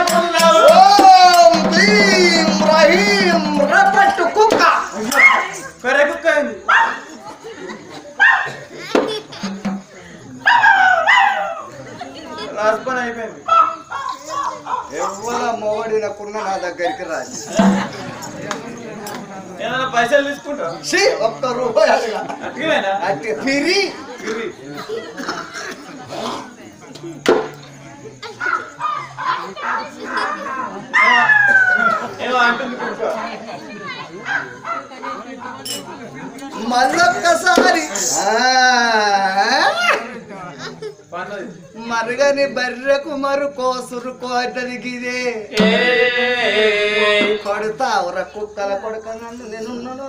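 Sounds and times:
men calling in exaggerated tones: 0.0s - 5.8s, 45.4s - 47.8s
people calling out and talking: 0.0s - 50.0s.

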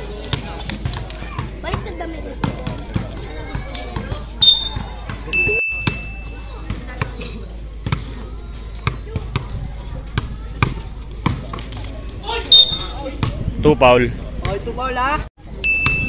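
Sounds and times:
basketball bouncing on concrete: 0.2s - 8.2s, 8.8s - 11.9s, 12.8s - 13.4s.

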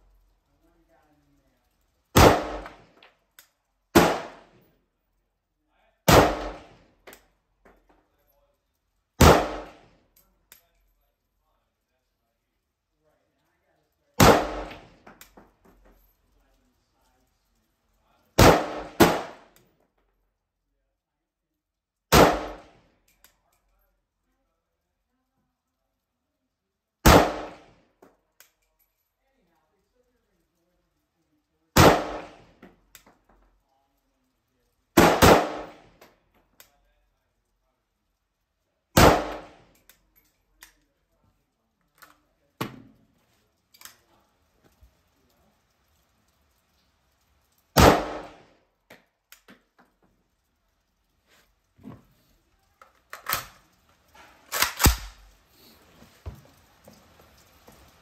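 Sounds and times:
rifle single shots with echo: 2.2s - 2.8s, 3.9s - 4.6s, 6.1s - 6.8s, 9.2s - 9.9s, 14.2s - 15.0s, 18.4s - 19.6s, 22.1s - 22.7s, 27.0s - 27.7s, 31.8s - 32.5s, 35.0s - 35.9s, 39.0s - 39.6s, 47.8s - 48.5s, 54.5s - 55.3s
faint rifle clicks: 39.0s - 55.8s.

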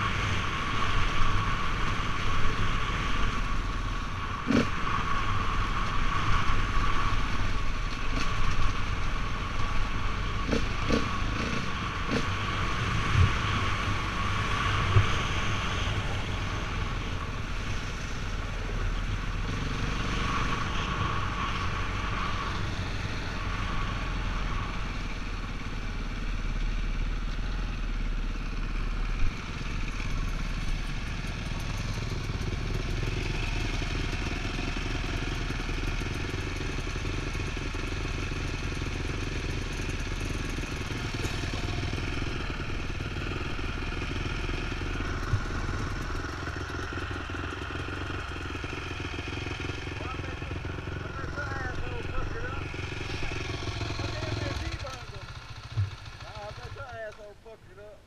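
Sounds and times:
dirt bike engine running: 0.0s - 57.6s.

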